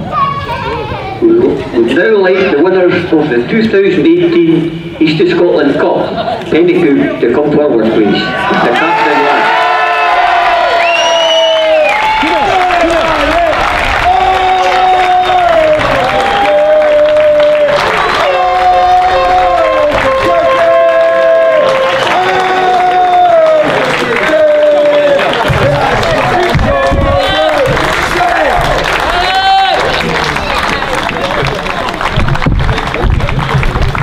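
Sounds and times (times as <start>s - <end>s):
crowd applauding: 8.3s - 34.0s.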